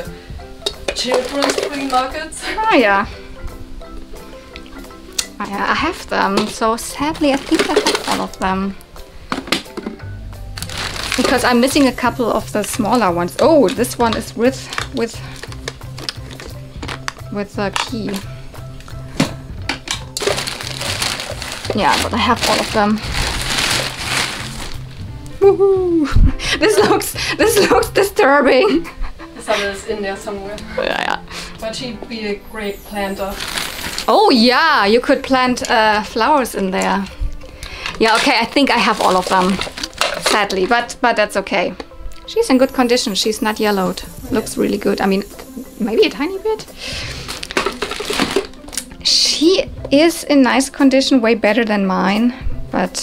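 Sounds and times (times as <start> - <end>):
background music: 0.0 - 53.0
plastic bag rustling: 0.9 - 3.0, 5.8 - 8.6, 9.3 - 25.3, 32.8 - 36.2, 37.8 - 40.9, 44.2 - 48.9.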